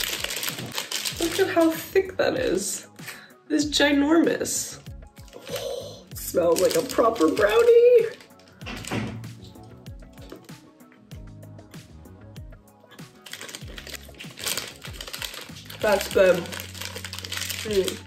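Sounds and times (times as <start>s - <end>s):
plastic wrapper crinkling: 0.0s - 1.8s, 5.2s - 10.5s, 12.9s - 18.0s
soft background music: 0.0s - 18.0s
person eating: 13.1s - 15.8s.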